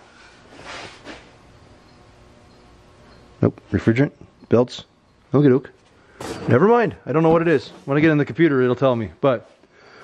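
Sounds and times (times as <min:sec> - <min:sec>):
faint steady background hum: 0:00.0 - 0:10.0.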